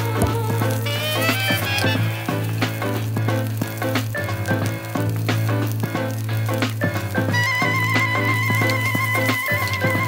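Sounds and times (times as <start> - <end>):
background music with steady beat: 0.0 - 10.0
vegetables sizzling in frying pan: 0.0 - 10.0.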